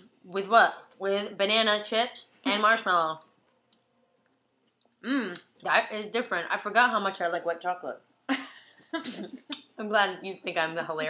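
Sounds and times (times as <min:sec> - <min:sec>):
woman's voice: 0:00.3 - 0:03.2, 0:05.1 - 0:11.0.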